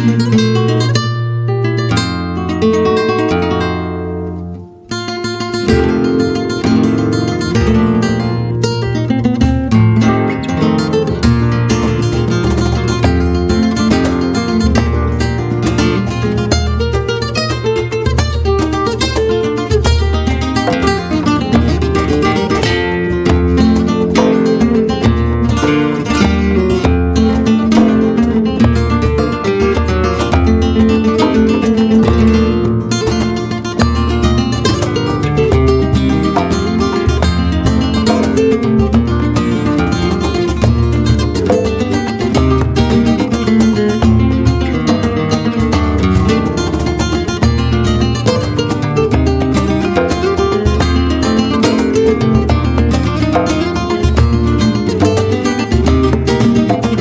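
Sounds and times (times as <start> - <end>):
flamenco guitar: 0.0 - 57.0
hand drum beating: 0.0 - 57.0.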